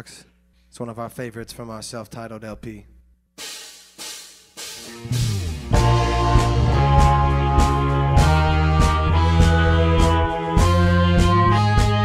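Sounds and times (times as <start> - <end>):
cymbal strikes: 3.4 - 6.9
band playing: 4.6 - 12.0.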